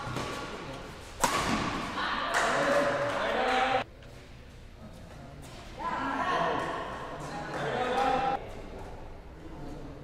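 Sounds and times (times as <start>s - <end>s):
racket hitting shuttlecock: 0.0s - 3.7s.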